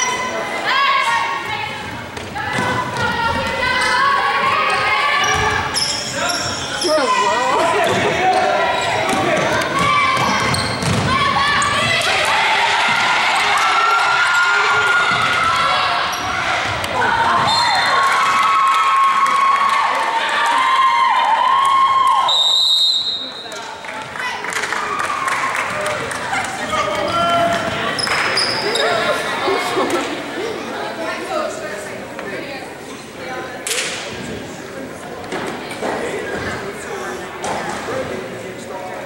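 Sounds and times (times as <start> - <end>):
referee's whistle blast: 22.3 - 23.5.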